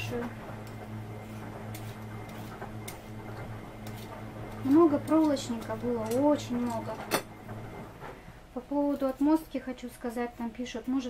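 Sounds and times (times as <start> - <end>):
steady low hum: 0.0 - 11.0
peeler scraping potato: 0.1 - 7.1, 8.8 - 9.4.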